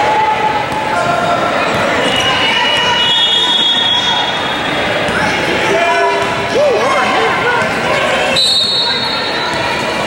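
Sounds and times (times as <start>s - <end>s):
sneakers squeaking: 1.4s - 5.5s, 7.5s - 10.0s.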